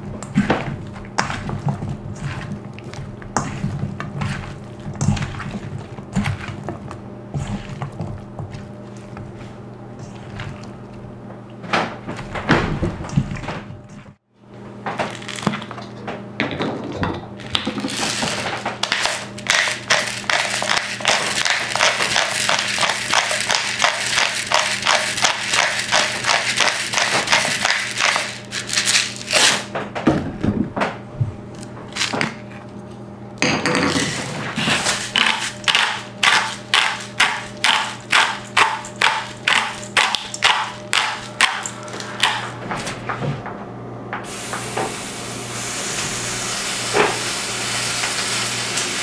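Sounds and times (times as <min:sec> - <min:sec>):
pepper mill grinding: 0:17.4 - 0:29.7, 0:34.0 - 0:42.4.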